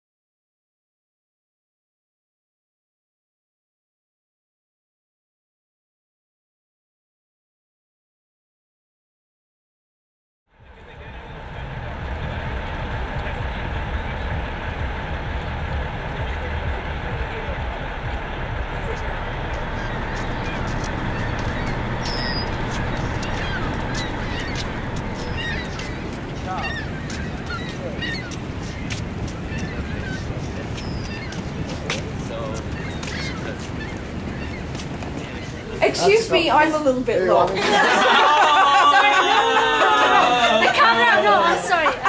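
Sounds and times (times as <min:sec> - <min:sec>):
waterfall roaring: 0:10.8 - 0:35.5
birds calling: 0:10.8 - 0:36.9.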